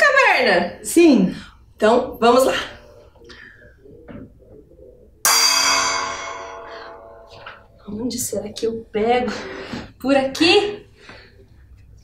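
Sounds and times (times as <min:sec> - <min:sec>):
gong strike ringing: 0:05.3 - 0:07.7.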